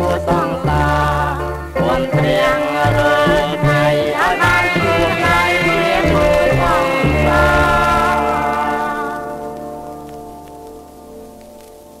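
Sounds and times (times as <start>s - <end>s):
vinyl crackles and hiss: 0.0s - 12.0s
orchestra holding final chord: 2.5s - 10.2s.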